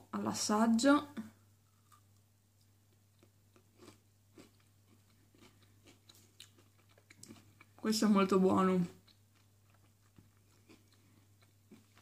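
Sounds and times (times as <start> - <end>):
chewing soft crunching: 1.6 - 7.8, 8.9 - 12.0.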